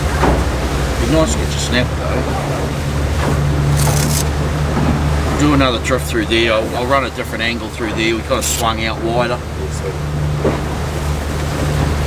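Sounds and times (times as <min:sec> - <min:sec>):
outboard engine droning: 0:00.0 - 0:12.0
water rushing past hull: 0:00.0 - 0:12.0.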